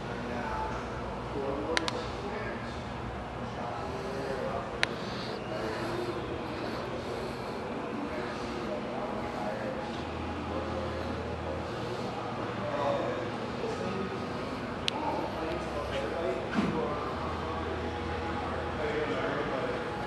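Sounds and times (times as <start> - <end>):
indistinct background voices: 0.0 - 20.0
steady low hum: 0.0 - 20.0
sharp click: 1.8 - 2.0.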